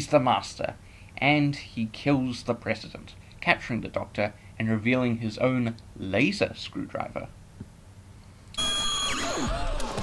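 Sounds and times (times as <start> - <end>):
high steady tone: 8.6 - 9.6.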